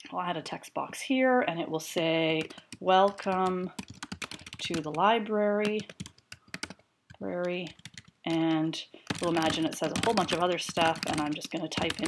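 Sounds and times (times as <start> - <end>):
person speaking: 0.0 - 6.0, 7.2 - 12.0
typing on keyboard: 2.4 - 5.0, 5.6 - 12.0.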